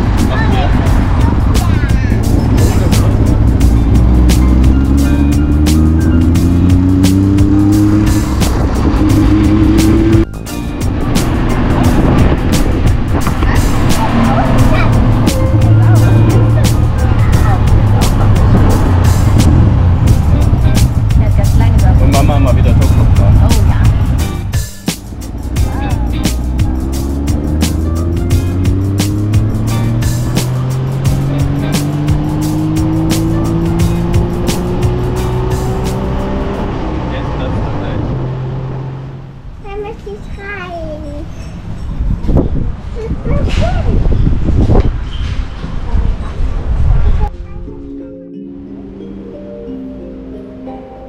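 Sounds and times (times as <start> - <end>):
vehicle engine accelerating: 0.0 - 39.6
tuk-tuk engine running: 0.0 - 45.0
road noise: 0.0 - 51.0
street traffic: 0.0 - 51.0.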